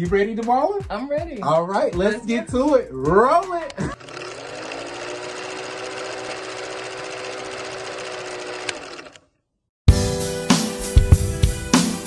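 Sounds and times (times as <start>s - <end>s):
music with drums: 0.0s - 4.0s, 9.9s - 12.0s
film projector clatter: 3.9s - 9.2s.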